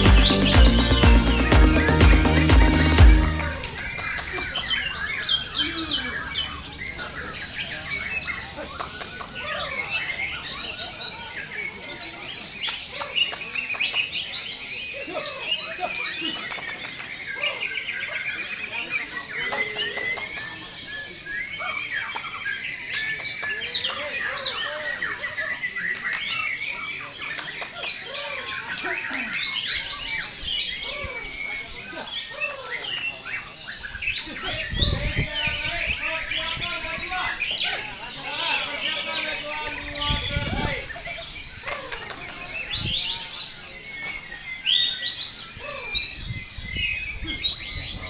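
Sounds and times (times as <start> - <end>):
songbirds singing: 0.0 - 48.0.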